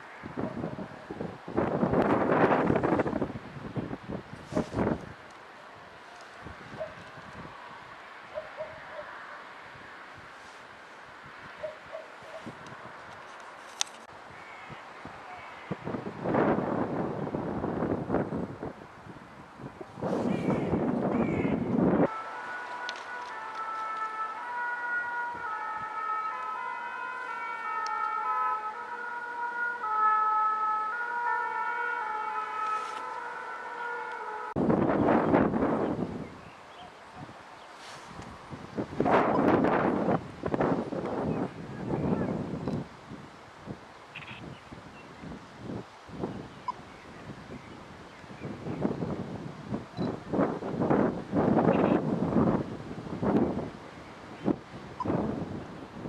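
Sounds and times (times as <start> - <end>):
wind gusts on microphone: 0.0 - 56.0.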